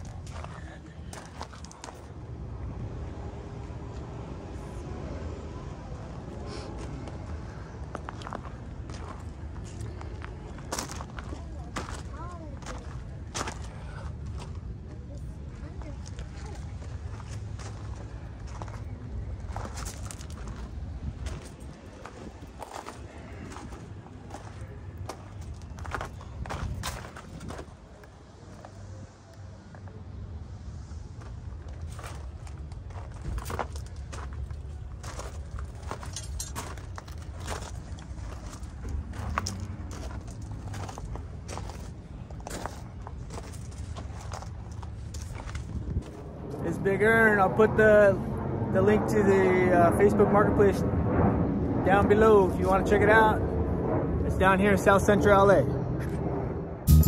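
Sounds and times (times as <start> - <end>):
footsteps crunching on gravel: 7.9 - 13.7.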